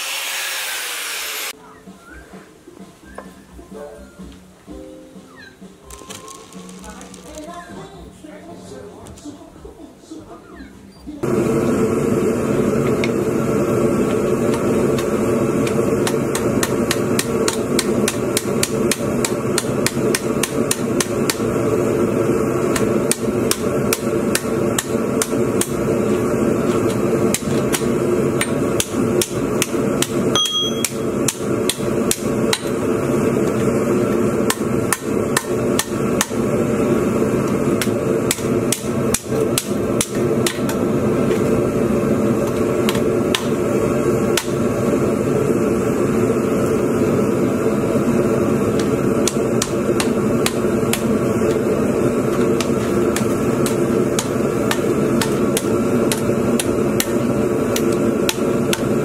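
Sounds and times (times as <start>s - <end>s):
steady hum: 11.2s - 59.0s
hammer striking steel on anvil: 27.3s - 32.7s, 34.5s - 36.4s.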